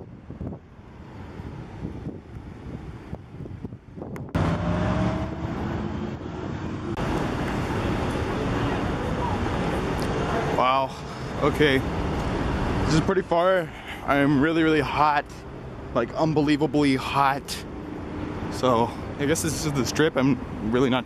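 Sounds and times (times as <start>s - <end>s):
wind on microphone: 0.0s - 7.0s
passing cars: 0.0s - 21.0s.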